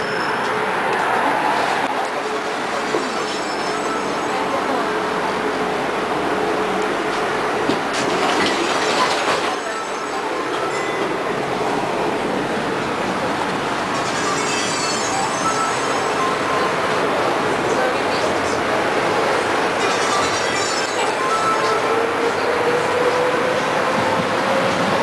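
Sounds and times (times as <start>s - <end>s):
high wheel squeal: 0.0s - 0.6s, 2.9s - 4.3s, 13.9s - 16.7s
tram wheels rumbling on rails: 0.0s - 25.0s.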